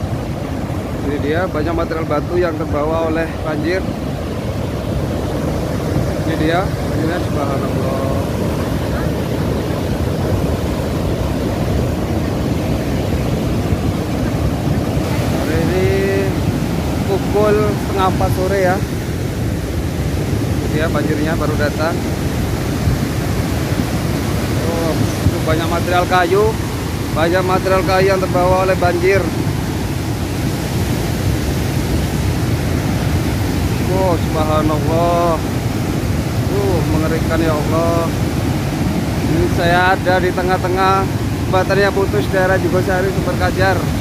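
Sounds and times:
mudflow rushing: 0:00.0 - 0:44.0.

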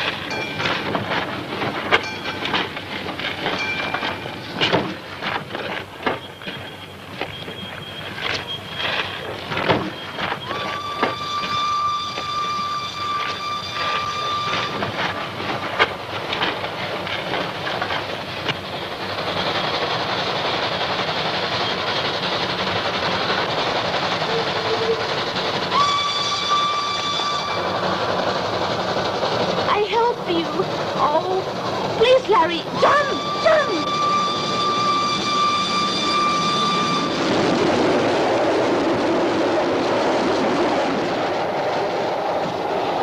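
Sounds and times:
train whistle: 0:00.0 - 0:00.6, 0:09.9 - 0:15.8, 0:24.2 - 0:28.4, 0:32.7 - 0:37.8
scattered knocks: 0:00.0 - 0:12.3
train rumble: 0:00.0 - 0:43.0.

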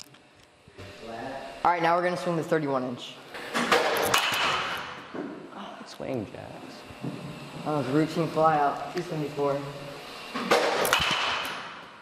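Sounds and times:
bat cracking a baseball: 0:03.7 - 0:04.9, 0:10.4 - 0:11.8.

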